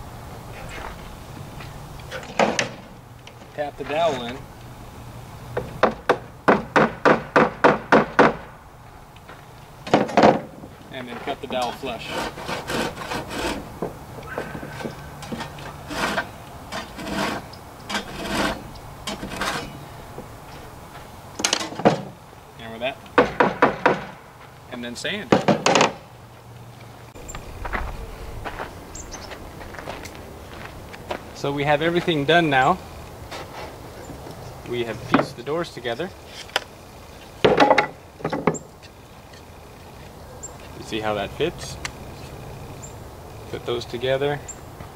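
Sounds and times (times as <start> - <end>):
footsteps on hard surface: 20.2 - 21.1, 26.3 - 32.2.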